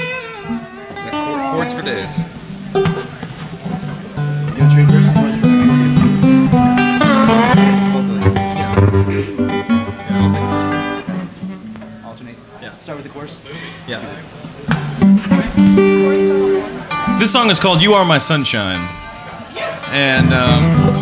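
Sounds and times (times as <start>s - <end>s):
acoustic string band playing: 0.0s - 12.0s, 14.6s - 19.2s, 20.0s - 21.0s.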